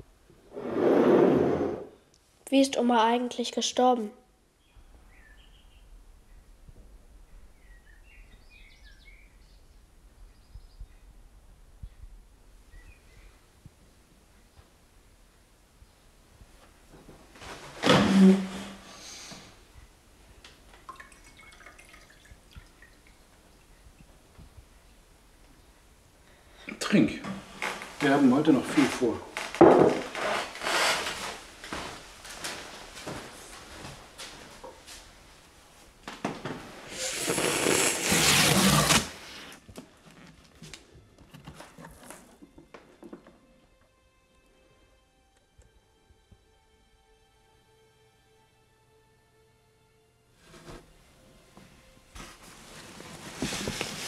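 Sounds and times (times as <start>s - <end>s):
chair scraping on wooden floor: 0.4s - 2.0s, 17.4s - 19.0s, 27.3s - 34.0s, 36.3s - 39.6s, 50.4s - 50.9s, 52.8s - 54.0s
faint bird chirps: 4.6s - 6.6s, 7.2s - 11.2s.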